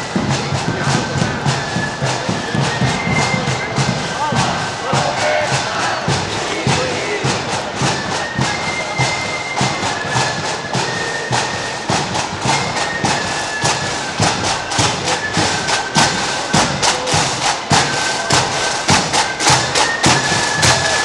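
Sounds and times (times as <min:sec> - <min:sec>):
shrill flute melody: 0:00.0 - 0:21.0
snare and bass drum beats: 0:00.0 - 0:21.0.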